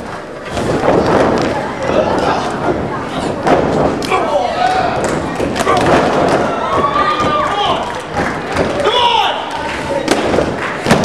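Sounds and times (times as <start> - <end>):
people shouting: 4.0 - 8.0, 8.8 - 9.6.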